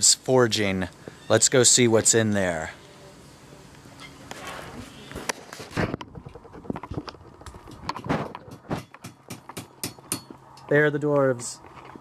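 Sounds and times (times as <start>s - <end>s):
hammers striking anvils: 8.5s - 10.4s.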